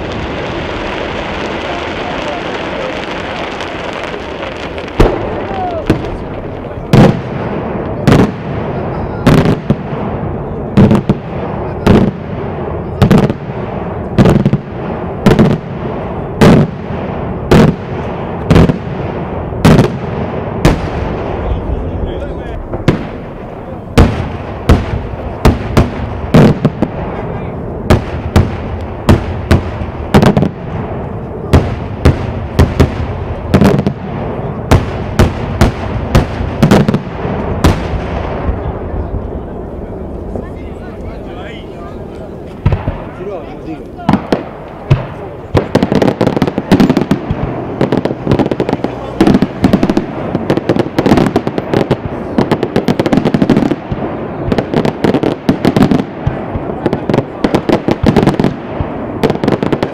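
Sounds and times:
fireworks bursting in loud bangs: 0.0s - 59.9s.

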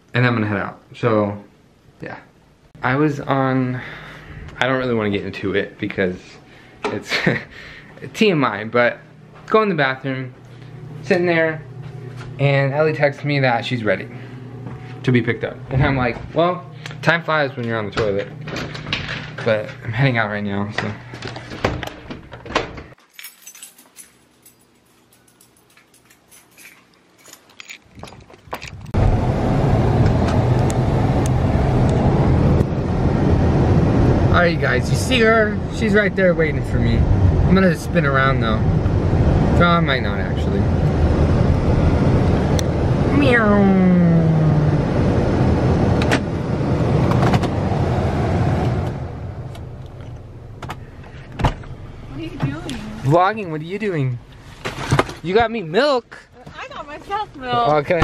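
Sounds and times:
handling clicks and rattles: 20.8s - 29.0s
car engine and road noise: 28.0s - 55.2s.

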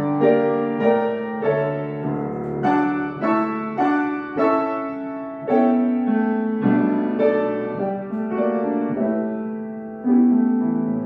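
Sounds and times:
acoustic piano melody: 0.0s - 11.0s.

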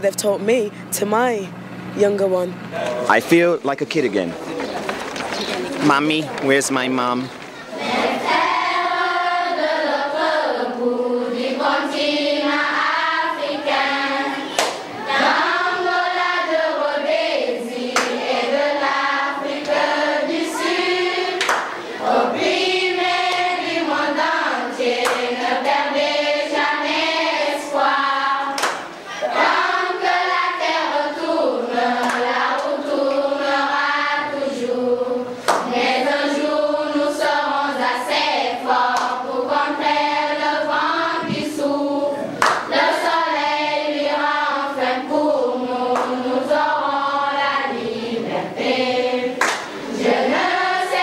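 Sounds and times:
voices singing in chorus: 6.7s - 51.0s
sharp clap or knock: 14.5s - 14.8s, 18.0s - 18.2s, 21.4s - 21.8s, 25.0s - 25.2s, 28.6s - 28.9s, 35.4s - 35.7s, 42.4s - 42.7s, 49.4s - 49.7s.

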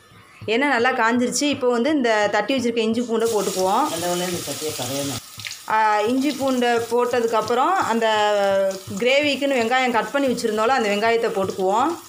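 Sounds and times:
food sizzling in hot oil: 3.2s - 12.0s.

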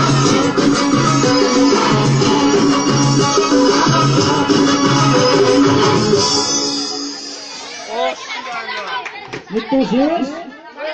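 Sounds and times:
people chattering: 5.2s - 10.9s.

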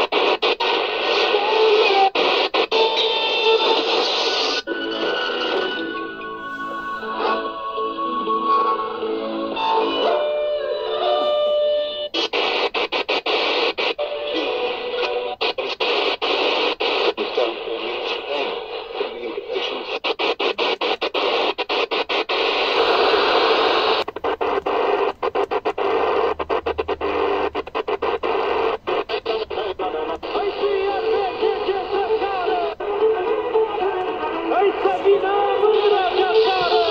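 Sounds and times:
radio hiss and static: 0.0s - 10.2s, 11.0s - 36.9s
music from radio speaker: 0.0s - 36.9s.

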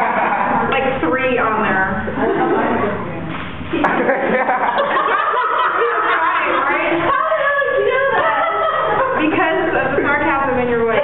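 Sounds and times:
people laughing: 0.0s - 0.7s, 2.1s - 3.0s, 3.7s - 10.2s
people chattering: 0.6s - 4.2s, 4.8s - 11.0s.

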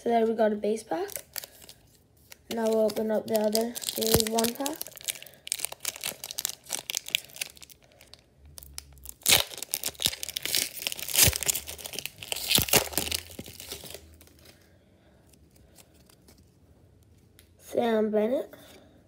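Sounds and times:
foil wrapper tearing and crinkling: 1.1s - 14.5s.

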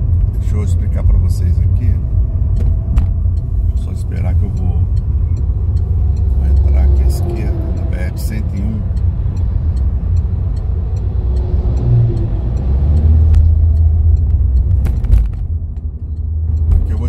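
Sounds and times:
car engine and road rumble: 0.0s - 17.0s.

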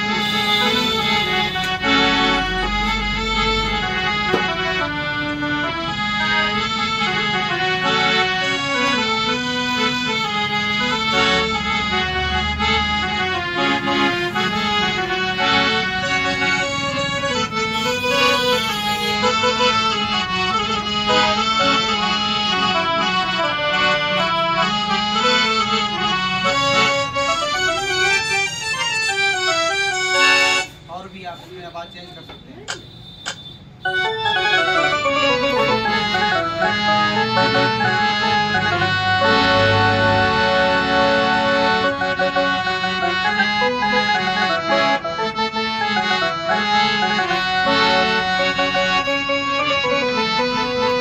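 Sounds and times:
harmonium melody: 0.0s - 51.0s.

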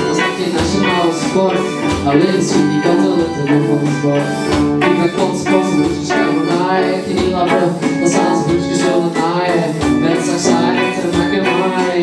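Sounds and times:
drums: 0.0s - 12.0s
electric guitar: 0.0s - 12.0s
keyboards: 0.0s - 12.0s
man singing: 0.0s - 12.0s.

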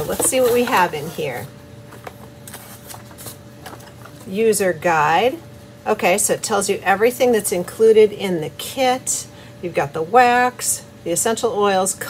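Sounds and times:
paper and cardboard rustling: 0.0s - 4.4s.

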